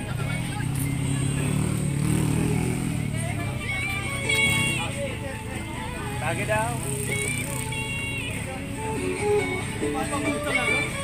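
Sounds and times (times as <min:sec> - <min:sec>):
faint voices: 0:00.0 - 0:11.0
vehicle engine running: 0:00.0 - 0:11.0.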